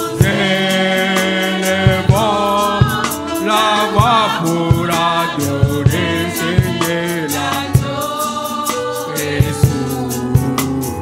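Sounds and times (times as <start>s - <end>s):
drum hits: 0.0s - 11.0s
voices singing worship song: 0.0s - 11.0s.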